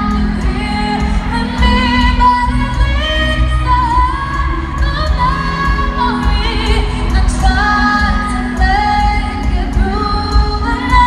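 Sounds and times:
band accompaniment with heavy bass: 0.0 - 11.0
woman singing slow r and b song: 0.0 - 11.0.

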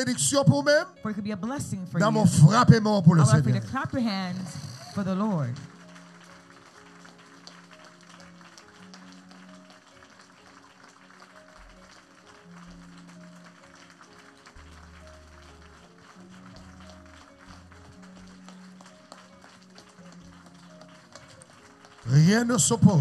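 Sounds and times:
soft church music: 0.0 - 23.0
congregation hand-clapping: 2.0 - 23.0.

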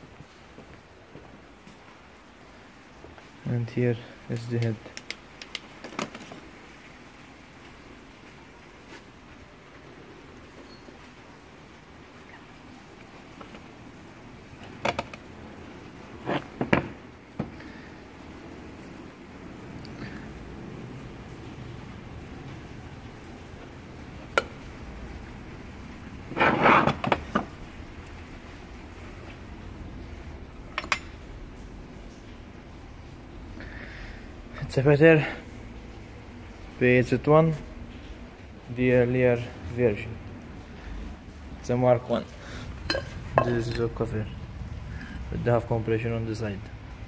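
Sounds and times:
metal parts clinking on workbench: 30.8 - 31.1.

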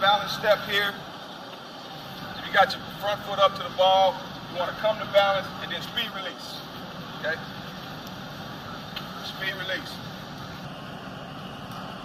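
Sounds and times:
steady hum and hiss: 0.0 - 12.0.

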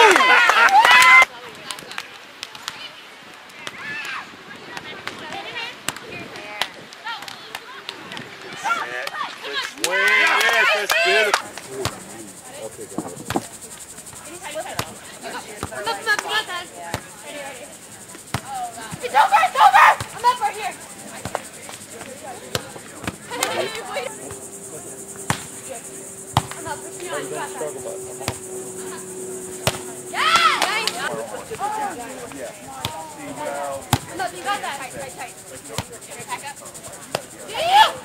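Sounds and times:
voices calling out: 0.0 - 38.0
high insect buzz: 10.7 - 38.0
volleyball being struck: 11.5 - 12.0, 14.6 - 15.0, 18.3 - 19.1, 21.1 - 24.4, 25.1 - 25.7, 26.3 - 27.2, 28.2 - 28.6, 29.6 - 31.1, 32.8 - 33.0, 33.8 - 34.2.

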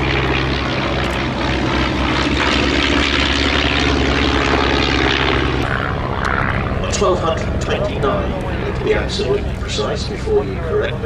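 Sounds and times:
propeller aircraft engines droning: 0.0 - 11.0.

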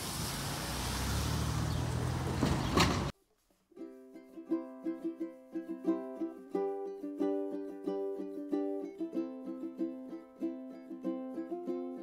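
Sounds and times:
car engine rumble driving past: 0.0 - 3.1.

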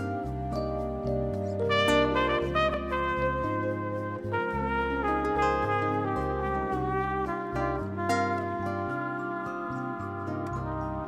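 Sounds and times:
jazz band playing: 0.0 - 11.0.

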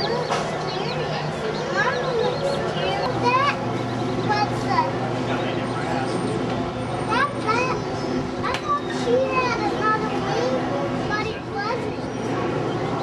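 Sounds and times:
children chattering and calling: 0.0 - 13.0
steady background hum: 0.0 - 13.0.

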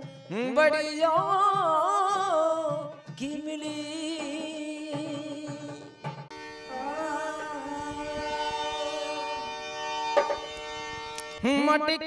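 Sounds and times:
harmonium holding a chord: 6.3 - 12.0.

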